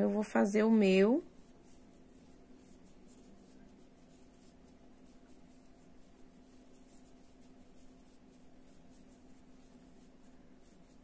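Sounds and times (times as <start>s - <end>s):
crochet hook scratching yarn: 0.0s - 11.0s
low steady hum: 0.0s - 11.0s.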